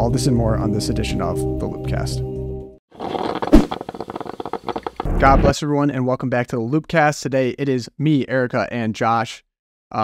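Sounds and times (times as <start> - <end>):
rapid crackling clicks: 3.0 - 5.2.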